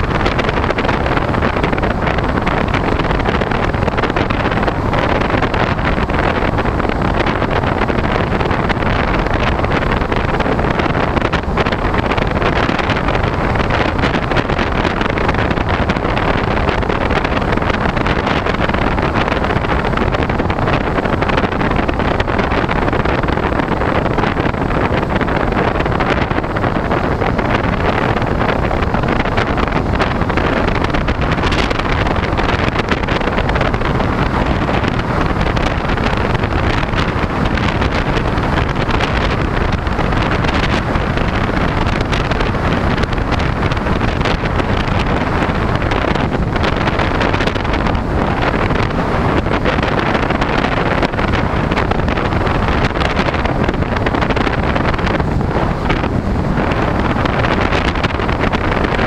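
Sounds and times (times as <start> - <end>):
airflow buffeting microphone: 0.0 - 59.0.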